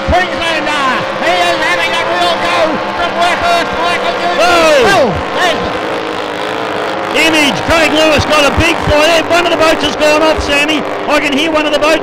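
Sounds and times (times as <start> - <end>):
racing powerboat engines droning: 0.0 - 12.0.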